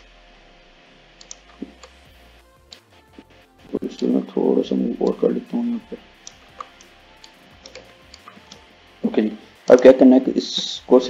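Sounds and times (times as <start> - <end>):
quiet background music: 0.0 - 11.0
computer mouse clicks: 1.2 - 2.0, 6.2 - 8.7.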